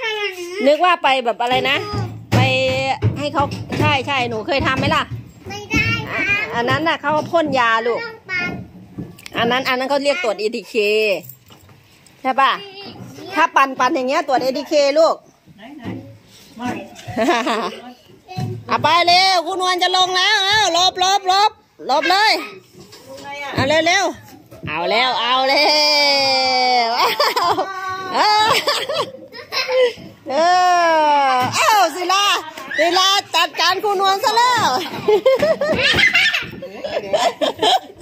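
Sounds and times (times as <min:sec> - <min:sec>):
children's voices at play: 0:00.0 - 0:02.4, 0:05.4 - 0:08.9, 0:12.4 - 0:13.7, 0:16.1 - 0:23.3, 0:25.6 - 0:38.0
people laughing heartily: 0:27.0 - 0:30.1, 0:35.0 - 0:38.0.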